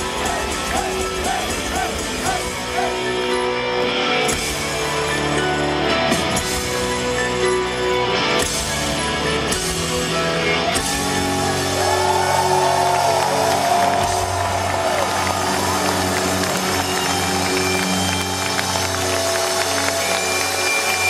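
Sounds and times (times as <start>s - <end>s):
drums: 0.0s - 21.0s.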